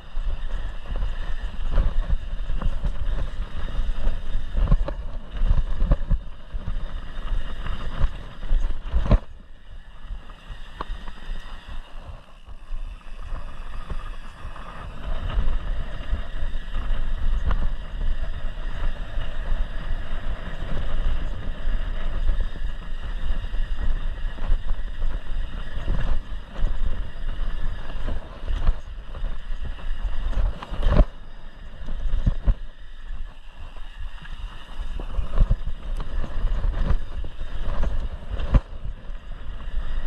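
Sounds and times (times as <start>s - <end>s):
bike rattling over bumps: 0.0s - 40.0s
wind buffeting microphone: 0.0s - 40.0s.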